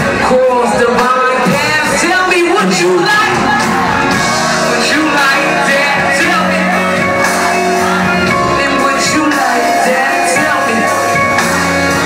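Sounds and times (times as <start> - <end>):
crowd shouting: 0.0 - 12.0
live band playing instrumental: 0.0 - 12.0.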